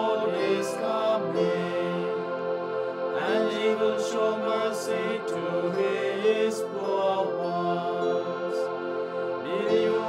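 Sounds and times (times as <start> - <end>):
person singing chant: 0.0 - 10.0
sustained accompaniment: 0.0 - 10.0.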